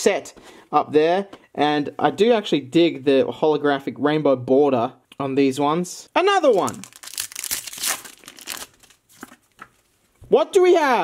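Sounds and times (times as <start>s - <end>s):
foil pack crinkling: 6.4s - 9.6s.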